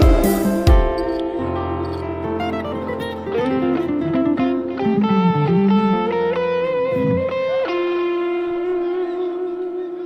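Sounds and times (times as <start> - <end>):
plucked guitar notes: 0.0 - 10.0.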